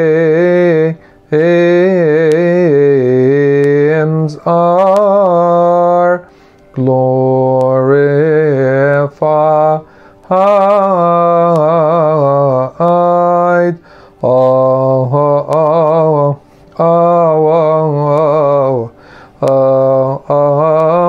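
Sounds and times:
man chanting a hymn: 0.0s - 21.0s
man breathing: 1.0s - 1.3s, 6.2s - 6.7s, 9.8s - 10.3s, 13.8s - 14.2s, 18.9s - 19.4s.

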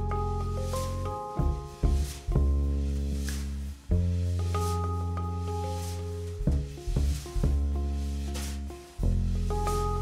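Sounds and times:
drums and cymbal: 0.0s - 4.9s
upright double bass notes: 0.0s - 10.0s.

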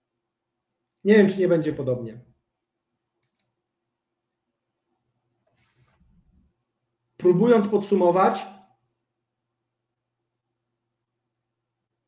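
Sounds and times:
man speaking: 1.1s - 2.3s, 7.2s - 8.6s
faint quick clicks: 3.2s - 3.6s.

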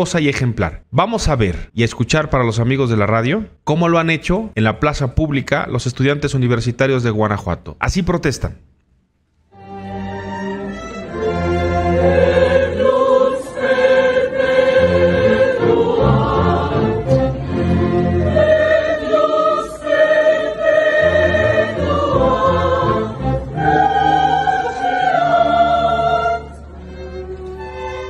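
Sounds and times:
orchestra playing classical piece: 9.6s - 28.0s.

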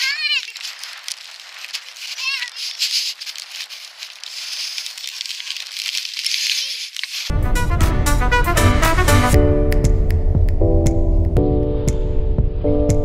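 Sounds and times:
small child's high-pitched vocal sound: 0.0s - 0.6s, 2.1s - 2.7s
crackling and rustling on microphone: 0.0s - 7.3s
steady hiss: 0.0s - 7.3s.

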